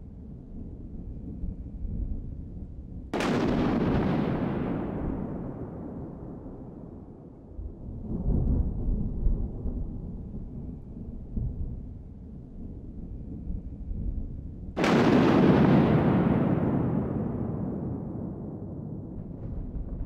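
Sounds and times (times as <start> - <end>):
deep rumbling booms: 13.9 - 20.0.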